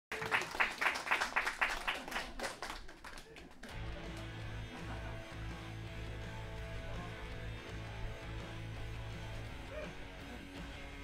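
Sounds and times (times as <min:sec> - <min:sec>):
audience clapping in rhythm: 0:00.1 - 0:09.5.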